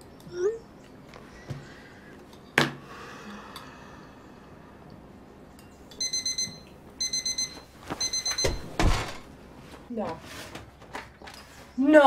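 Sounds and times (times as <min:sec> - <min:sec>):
oven timer beeping: 0:06.0 - 0:08.9.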